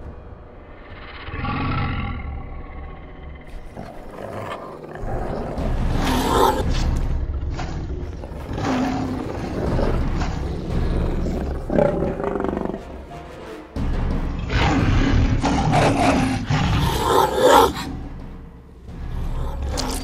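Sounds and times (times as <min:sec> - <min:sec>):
background music: 0:00.0 - 0:20.0
big cat roars and snarls: 0:00.6 - 0:13.0, 0:14.4 - 0:18.1, 0:19.0 - 0:20.0.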